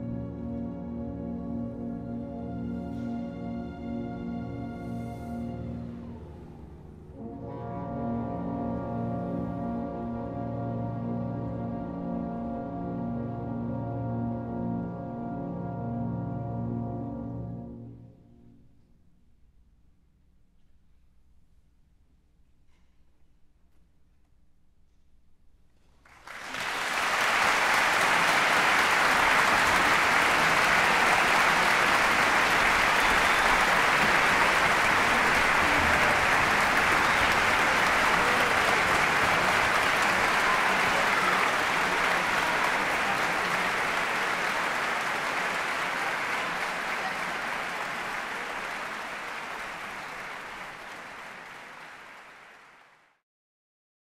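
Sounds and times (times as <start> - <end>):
audience applauding: 26.1 - 53.2.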